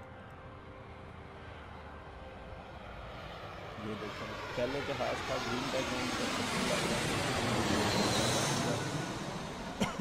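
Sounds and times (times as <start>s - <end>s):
jet airliner engine noise: 0.0s - 10.0s.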